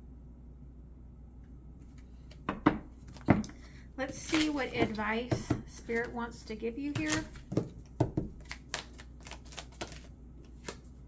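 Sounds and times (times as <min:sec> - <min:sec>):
cards shuffling clicks: 0:03.0 - 0:05.1, 0:06.9 - 0:11.0.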